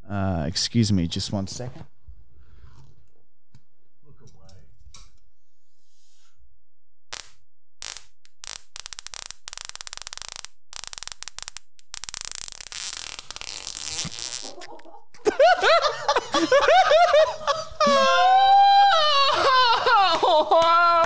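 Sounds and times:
long sputtering fart: 7.8s - 14.9s
loud laughter: 14.4s - 21.0s.

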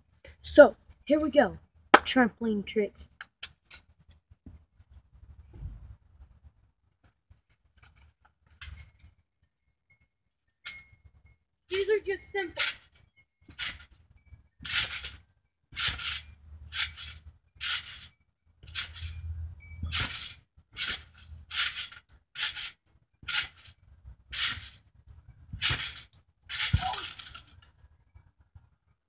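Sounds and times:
trampoline frame creaking: 7.6s - 9.2s, 10.6s - 28.1s
trampoline springs jingling: 9.9s - 28.4s.

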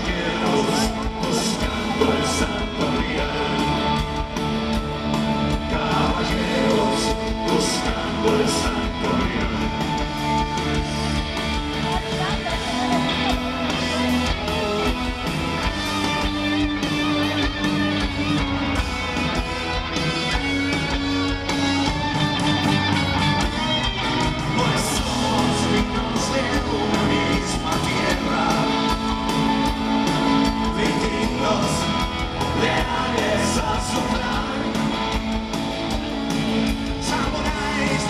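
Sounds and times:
bass guitar: 0.0s - 38.0s
drums: 0.0s - 38.0s
electric guitars: 0.0s - 38.0s
keyboard: 0.0s - 38.0s.

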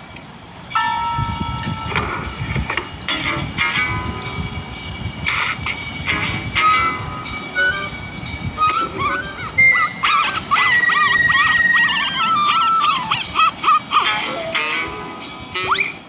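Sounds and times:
cartoon music: 5.3s - 16.0s
high dog-like yips and whimpers: 8.7s - 14.9s.

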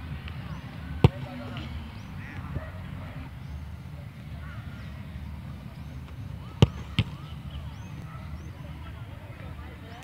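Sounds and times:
football kicked thud: 1.0s - 1.6s, 6.4s - 7.3s.

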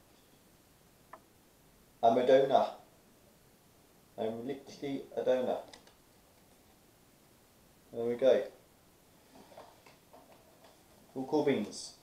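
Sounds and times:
faint irregular clicks: 1.1s - 1.4s, 5.6s - 6.8s.

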